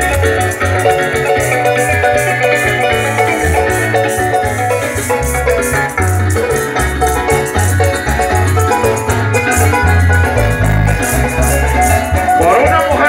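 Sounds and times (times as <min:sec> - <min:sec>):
harp melody: 0:00.0 - 0:13.0
maracas shaking: 0:00.0 - 0:13.0.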